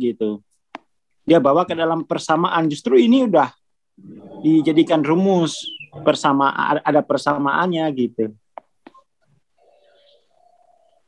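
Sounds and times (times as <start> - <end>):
faint bird call: 4.0 - 6.2, 9.6 - 11.0.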